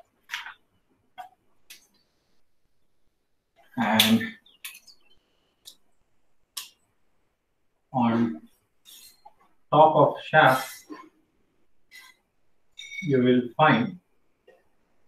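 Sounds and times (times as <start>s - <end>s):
marker squeak: 8.8s - 9.4s, 11.9s - 12.2s, 12.8s - 13.2s.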